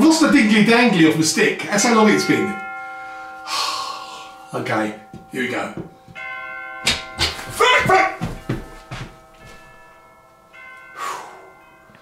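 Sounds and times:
chime-like background music: 2.1 - 7.7, 8.4 - 12.0
ladder rattle: 6.8 - 9.6
metal ladder clunks and scrapes: 6.8 - 9.6.

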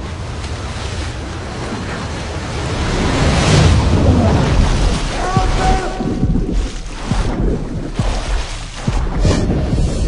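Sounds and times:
deep rumble: 0.0 - 10.0
rushing wind-like noise: 0.0 - 10.0
low thuds: 3.8 - 10.0.

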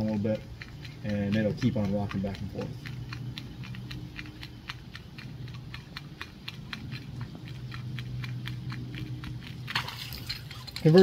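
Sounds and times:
low steady hum: 0.0 - 11.0
water splashing: 9.7 - 11.0.

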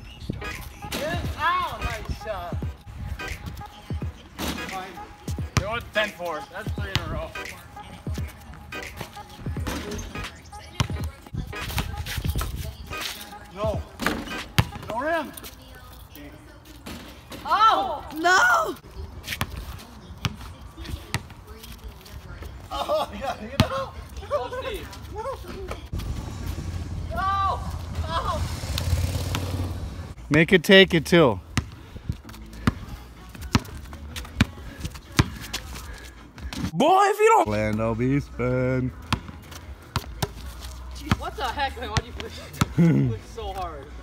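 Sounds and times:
voices calling out: 0.0 - 31.4
basketball bouncing on asphalt: 5.3 - 5.9, 6.6 - 12.8, 13.7 - 15.4, 19.3 - 21.8, 23.5 - 23.9, 31.4 - 36.7, 38.9 - 42.8.

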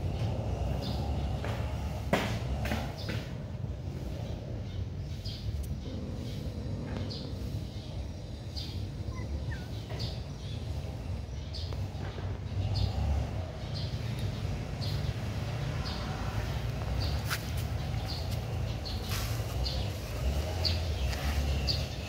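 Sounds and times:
bird chirping: 4.1 - 22.0.

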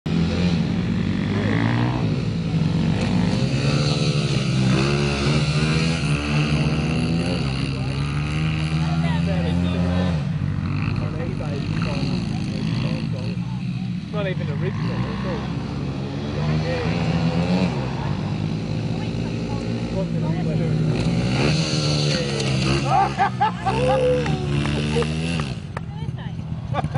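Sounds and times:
dirt bike engine revving: 0.1 - 26.9.

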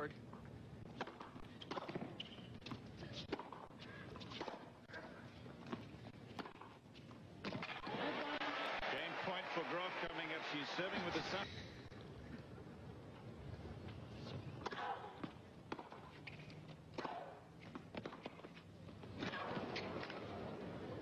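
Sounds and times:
tennis ball bouncing: 0.9 - 4.8, 5.6 - 7.9, 14.6 - 20.2
crowd cheering and applauding: 7.6 - 11.4.

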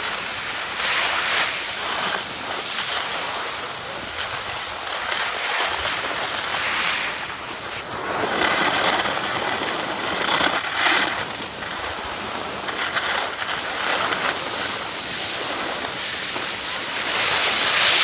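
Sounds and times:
skis scraping over snow: 0.0 - 18.0.

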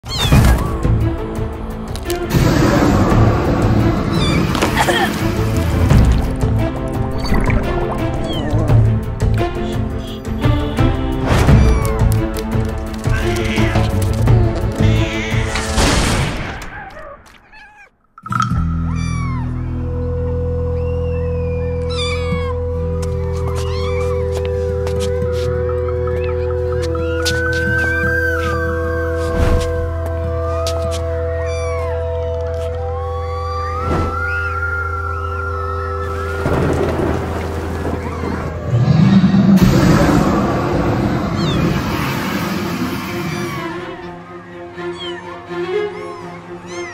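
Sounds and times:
background music: 0.0 - 17.0, 18.2 - 46.9
kitten meowing: 8.2 - 8.6, 11.6 - 12.0, 17.4 - 17.9, 18.9 - 19.5, 21.8 - 22.6, 23.5 - 24.3, 31.3 - 32.0, 41.4 - 41.6, 44.8 - 46.9.

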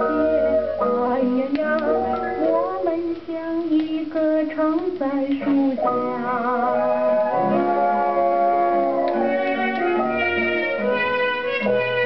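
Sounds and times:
woman singing on old record: 0.0 - 10.7.

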